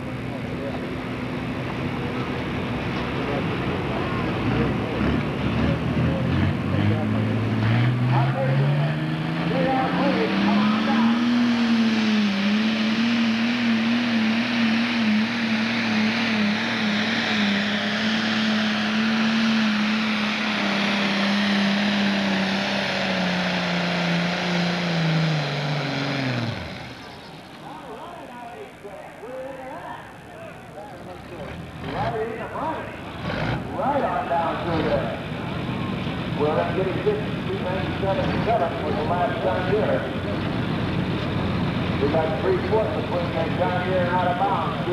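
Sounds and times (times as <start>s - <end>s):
crowd voices: 0.0s - 11.7s, 26.4s - 44.9s
diesel engine at full throttle: 0.0s - 44.9s.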